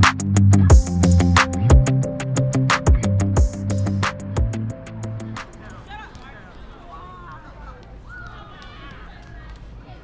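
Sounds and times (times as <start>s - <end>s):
background music with drum beat: 0.0s - 5.6s
children calling out: 6.9s - 10.0s.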